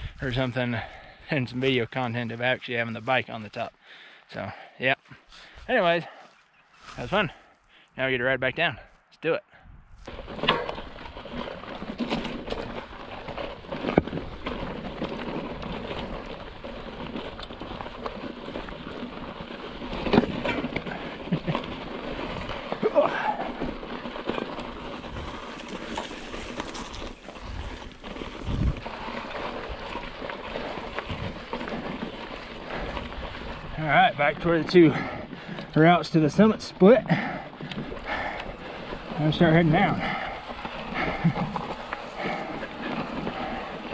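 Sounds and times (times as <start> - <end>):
bike tyres crunching over scree: 9.9 - 43.9
rocks and bike frame clattering: 9.9 - 43.9.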